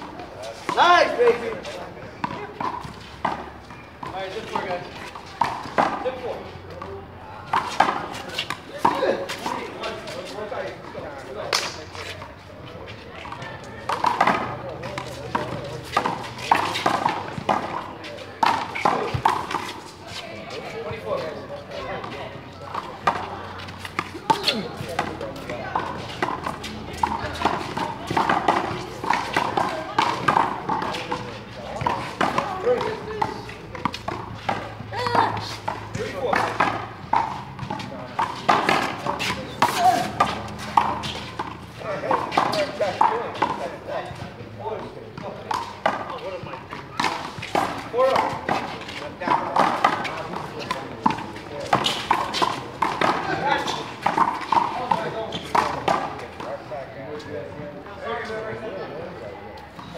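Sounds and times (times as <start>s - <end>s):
players calling: 0.0s - 56.6s.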